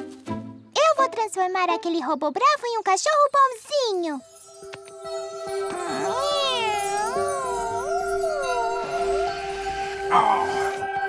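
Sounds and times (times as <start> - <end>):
high wavering voice-like glide: 5.5 - 10.8.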